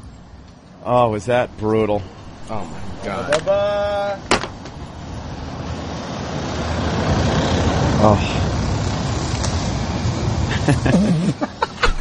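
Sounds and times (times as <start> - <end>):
vehicle rumbling past: 1.1 - 10.9.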